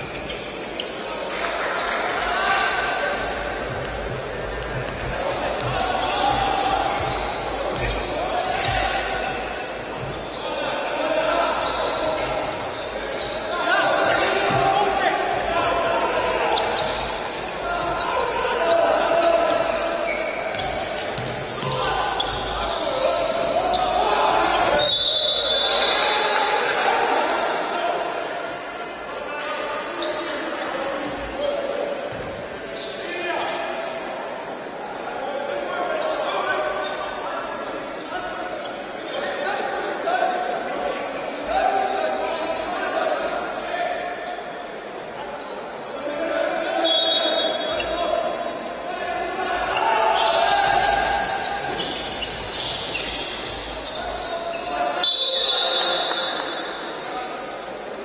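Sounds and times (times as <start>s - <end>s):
voices echoing in a hall: 0.0s - 58.0s
referee's whistle blast: 24.8s - 26.2s, 54.9s - 56.3s.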